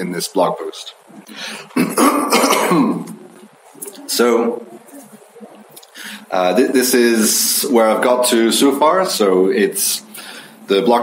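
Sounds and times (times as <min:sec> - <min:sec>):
man clearing his throat: 0:01.7 - 0:03.2.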